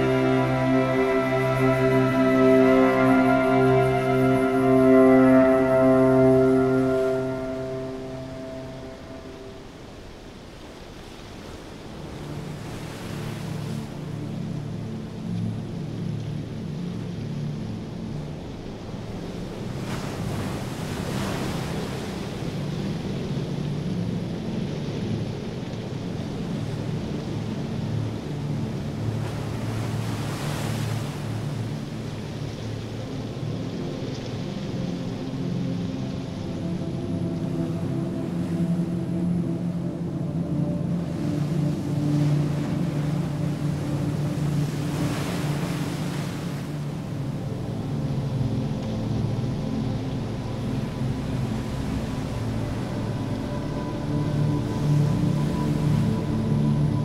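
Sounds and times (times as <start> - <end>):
low rumbling drone: 0.0 - 9.9
faint steady hum: 0.0 - 57.0.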